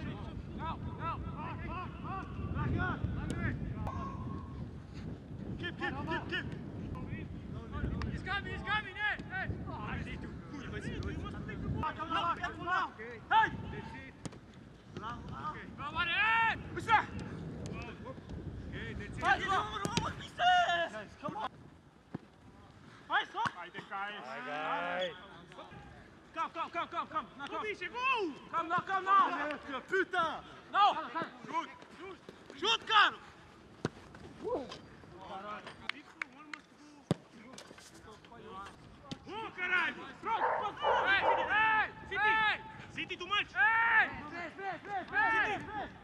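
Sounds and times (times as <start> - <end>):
football being kicked: 19.2 - 20.2, 37.1 - 37.3
players shouting: 39.1 - 46.0.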